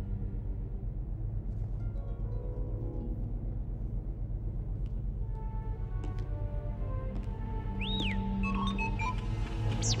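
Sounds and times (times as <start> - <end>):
film music with low pulsing drone: 0.0 - 10.0.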